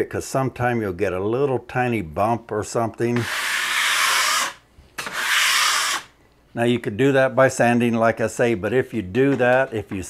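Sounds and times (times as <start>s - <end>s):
drywall knife scraping: 3.2s - 6.2s.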